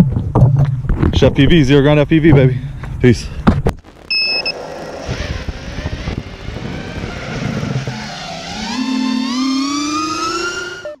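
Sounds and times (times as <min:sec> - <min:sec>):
rough rumble: 0:00.0 - 0:10.6
engine-like whine rising in pitch: 0:03.8 - 0:11.0.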